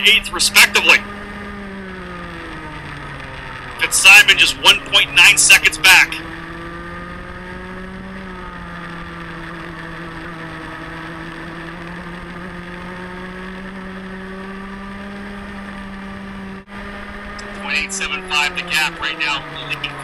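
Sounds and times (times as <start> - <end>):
kart engine at race speed: 0.0 - 20.0.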